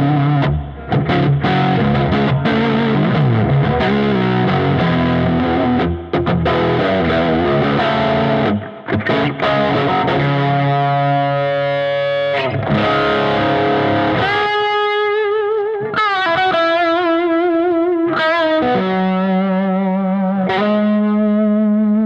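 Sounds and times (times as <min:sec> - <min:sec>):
distorted electric guitar: 0:00.0 - 0:22.0.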